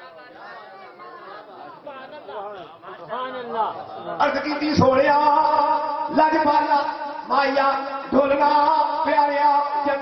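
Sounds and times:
low chatter of voices: 0.0 - 4.6.

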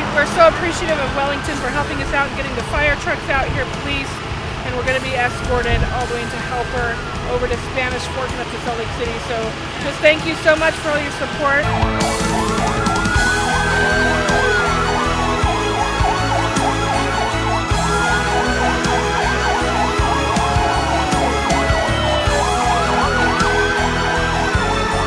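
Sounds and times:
wailing siren: 0.0 - 3.7, 4.8 - 9.1, 10.4 - 25.0
background music with steady beat: 0.0 - 25.0
yelping sirens: 0.0 - 25.0.

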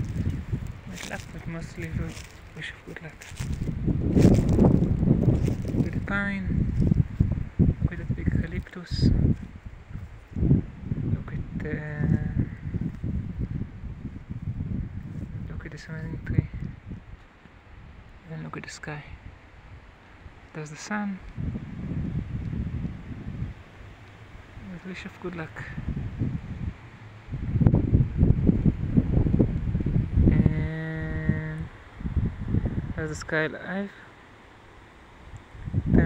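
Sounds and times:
wind buffeting microphone: 0.0 - 20.5, 21.2 - 33.5, 35.1 - 36.0.

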